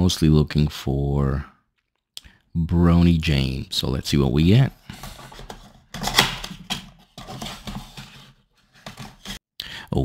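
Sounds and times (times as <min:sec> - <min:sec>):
cardboard box tearing: 0:06.0 - 0:06.6.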